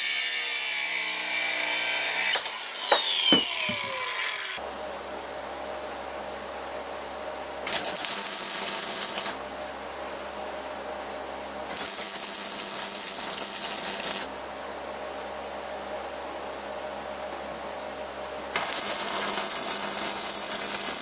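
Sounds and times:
electric arc welding crackle: 7.6 - 9.4, 11.7 - 14.3, 18.6 - 21.0.

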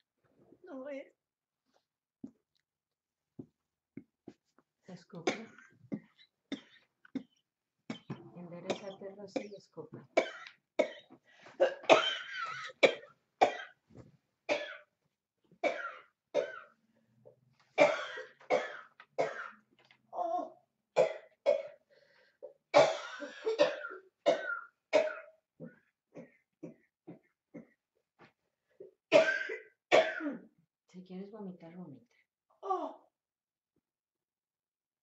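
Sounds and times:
woman coughing hard: 5.2 - 5.8, 8.7 - 9.6, 10.2 - 13.8, 14.5 - 14.9, 15.6 - 16.7, 17.8 - 19.6, 22.8 - 25.3, 29.1 - 30.5.

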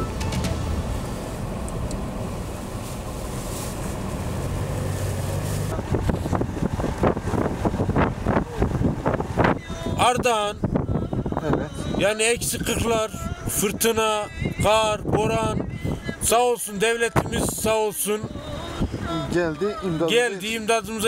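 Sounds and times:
heavy vehicle engine running: 0.0 - 10.0
blizzard wind hissing: 0.6 - 9.6.

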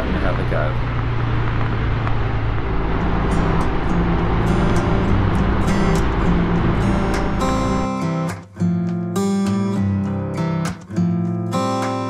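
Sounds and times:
motorcycle engine at road speed: 0.0 - 7.9
wind rush: 0.0 - 7.9
strummed acoustic guitar music: 2.8 - 12.0.

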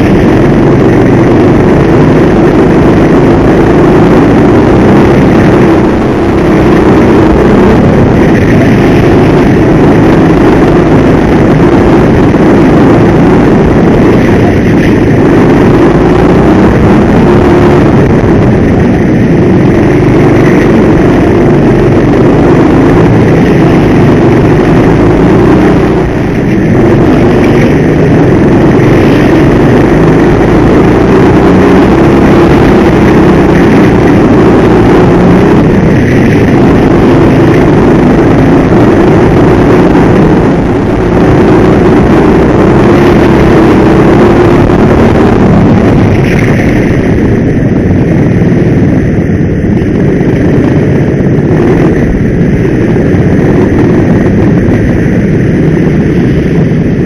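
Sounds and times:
go-kart engine running hard: 0.0 - 57.0.

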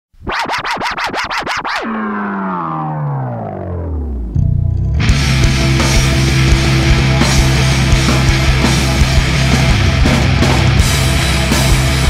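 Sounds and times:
turntable scratching: 0.2 - 4.3
pitched tone sliding down: 0.2 - 5.2.

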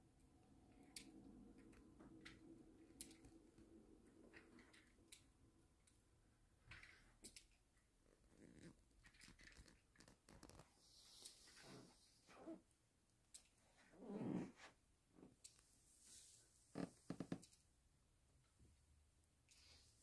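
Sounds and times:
soft rustles: 8.2 - 12.7, 13.5 - 17.4.

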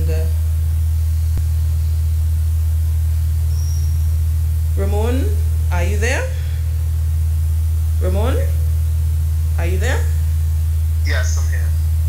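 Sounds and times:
low electrical hum: 0.0 - 12.0
faint hiss: 11.0 - 11.7.

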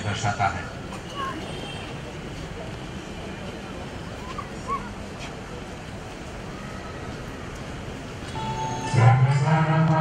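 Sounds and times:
crowd of children: 0.0 - 10.0.

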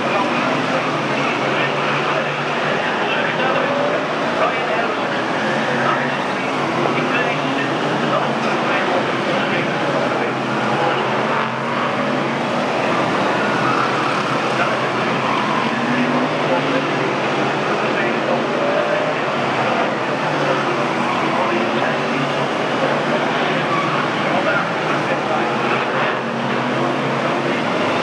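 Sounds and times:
indistinct voices: 0.0 - 28.0
race car engines: 0.0 - 28.0.

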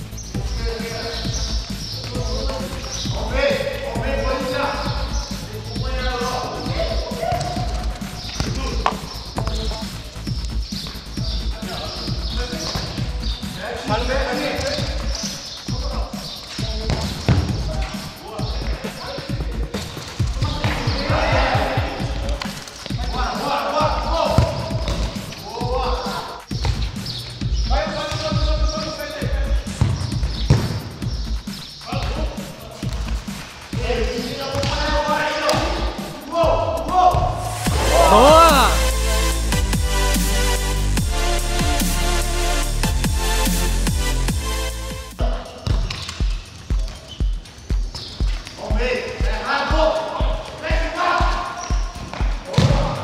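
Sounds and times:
ball kicked and bouncing on concrete: 7.2 - 11.1, 16.7 - 18.0, 24.3 - 25.4, 26.5 - 28.5, 29.7 - 31.2, 34.5 - 35.8, 45.6 - 49.2, 51.2 - 53.0.

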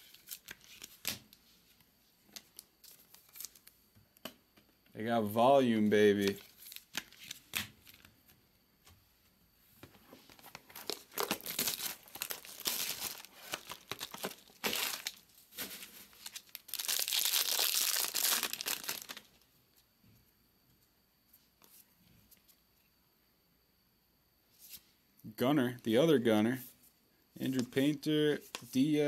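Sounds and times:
plastic wrapper crinkling: 2.3 - 3.7, 6.2 - 8.1, 10.2 - 19.4
plastic wrapper ripping open: 6.2 - 8.1, 10.3 - 19.4.

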